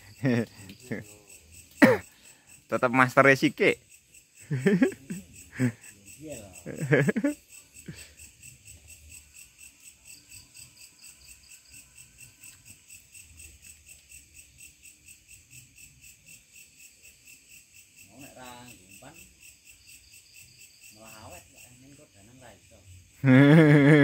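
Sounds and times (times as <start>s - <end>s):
crickets chirping: 0.0s - 24.0s.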